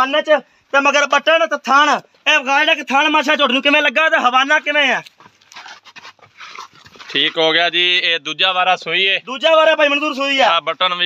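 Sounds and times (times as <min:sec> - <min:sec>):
man's voice: 0:00.0 - 0:05.1, 0:07.2 - 0:11.0.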